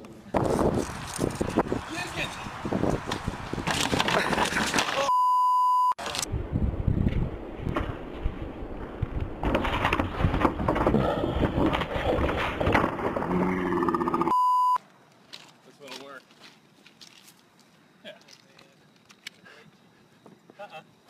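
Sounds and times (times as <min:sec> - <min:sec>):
sign clattering on pavement: 0:03.1 - 0:04.9
censor bleep: 0:05.0 - 0:06.0, 0:14.3 - 0:14.8.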